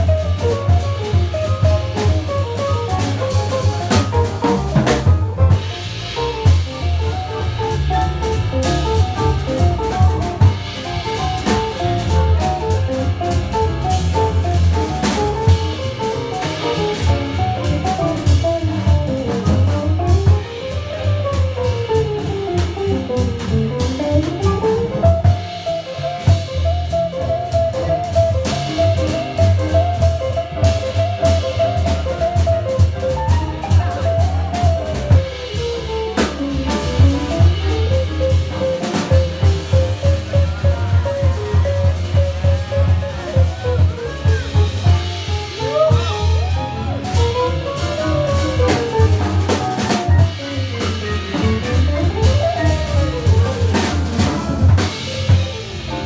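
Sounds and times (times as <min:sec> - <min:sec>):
double bass: 0:00.0 - 0:56.0
drum kit: 0:00.0 - 0:56.0
piano: 0:00.0 - 0:56.0.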